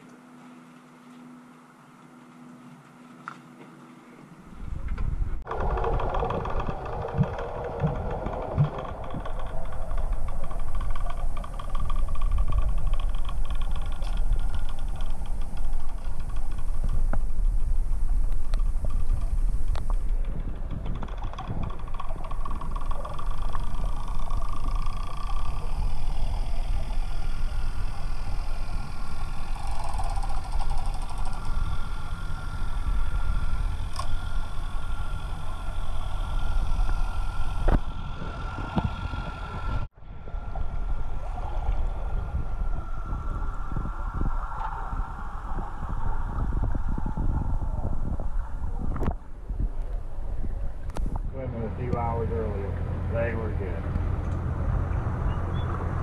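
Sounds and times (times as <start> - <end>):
faint steady whine: 0.0 - 56.0
underwater rumble: 4.4 - 56.0
small clicks: 4.9 - 37.9.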